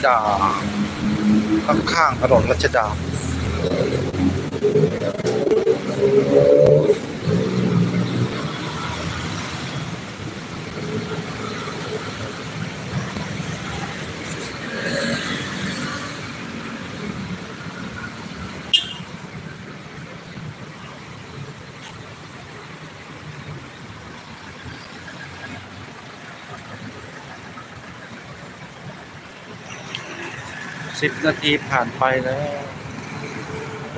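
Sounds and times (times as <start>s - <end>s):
car and motorbike engines: 0.0s - 33.9s.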